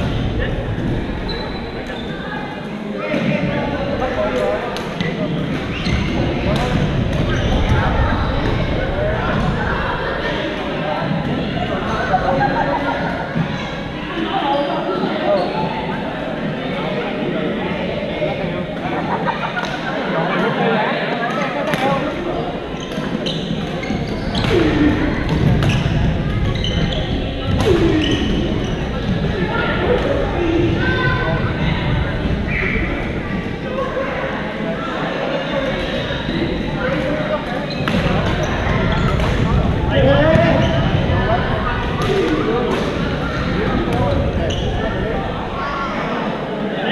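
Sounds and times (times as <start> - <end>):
babble of overlapping voices: 0.0 - 46.9.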